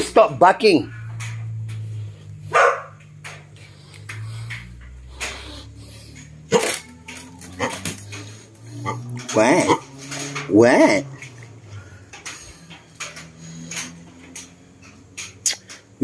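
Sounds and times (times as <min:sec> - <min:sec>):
dog barking: 0:02.5 - 0:03.0.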